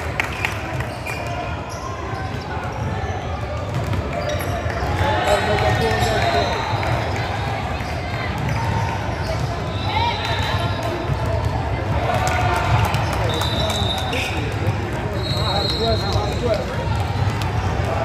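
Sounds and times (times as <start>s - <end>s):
indistinct chatter echoing: 0.0s - 18.0s.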